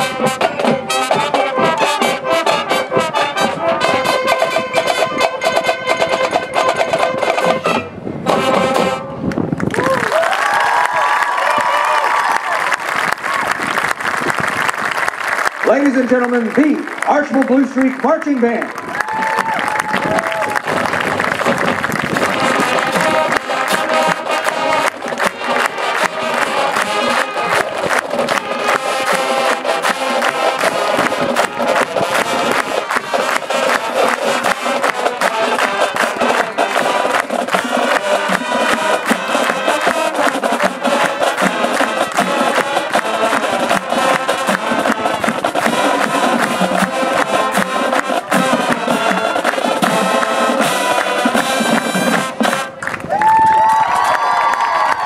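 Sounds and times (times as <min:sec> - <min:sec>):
marching band playing: 0:00.0 - 0:10.2, 0:12.4 - 0:54.1
crowd cheering: 0:09.6 - 0:55.0.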